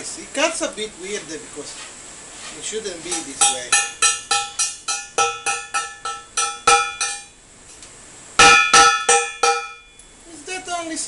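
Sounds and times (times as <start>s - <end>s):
hammer striking steel cylinder: 3.1s - 7.4s, 8.4s - 10.0s.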